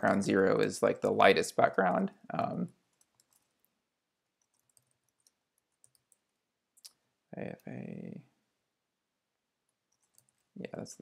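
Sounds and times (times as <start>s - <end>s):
keyboard keys clicking: 3.0s - 3.5s, 4.4s - 6.2s, 10.0s - 10.4s.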